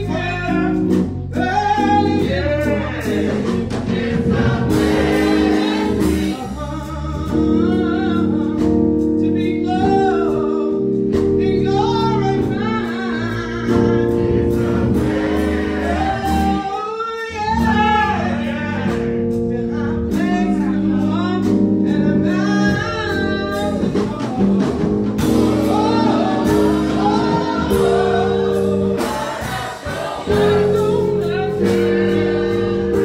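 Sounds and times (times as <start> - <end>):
gospel choir singing: 0.0 - 8.4, 11.6 - 21.0, 22.3 - 33.0
sustained accompanying chords: 0.0 - 16.7, 17.5 - 33.0.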